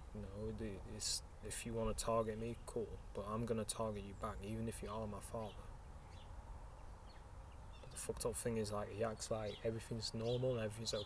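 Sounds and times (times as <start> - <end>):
low steady rumble with hiss: 0.0 - 11.0.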